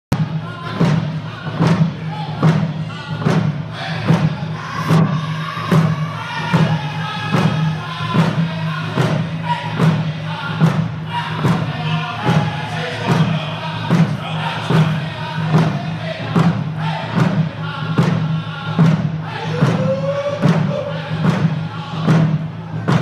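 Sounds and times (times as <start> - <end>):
hand drums beating in unison: 0.1 - 23.0
group singing in high voices: 0.2 - 23.0.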